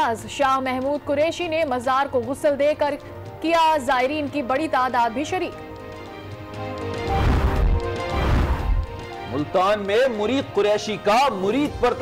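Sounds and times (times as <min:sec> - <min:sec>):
news music bed: 0:03.4 - 0:12.0
whooshing crash with deep bass: 0:07.1 - 0:09.0.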